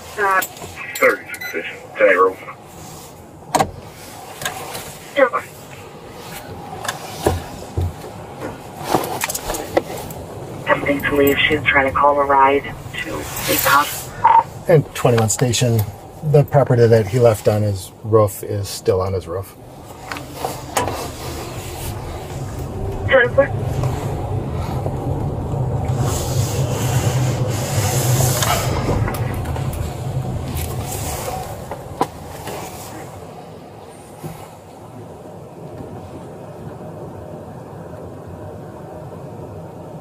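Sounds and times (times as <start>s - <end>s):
road and engine rumble in car: 0.0s - 40.0s.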